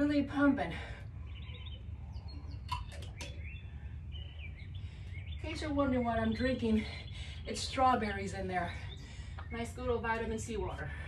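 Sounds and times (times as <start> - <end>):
low outdoor rumble: 0.0 - 11.0
small birds chirping: 0.2 - 11.0.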